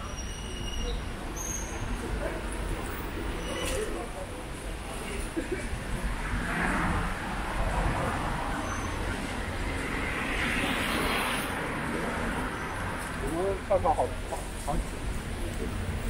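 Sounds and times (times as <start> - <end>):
street traffic: 0.0 - 16.0.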